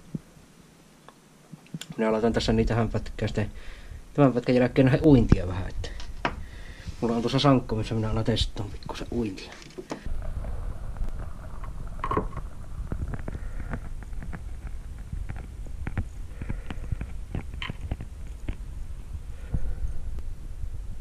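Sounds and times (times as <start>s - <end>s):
steady low rumble: 10.0s - 21.0s.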